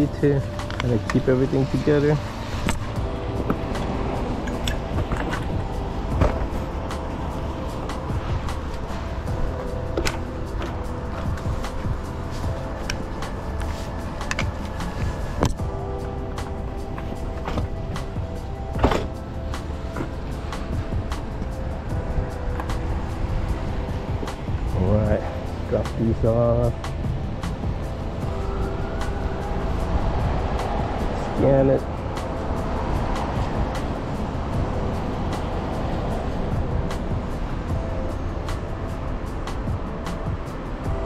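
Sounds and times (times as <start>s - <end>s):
background music with held notes: 0.0s - 41.0s
low street rumble: 0.0s - 41.0s.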